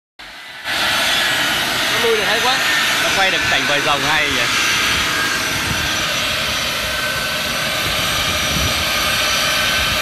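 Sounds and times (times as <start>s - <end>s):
jet engines whining: 0.2s - 10.0s.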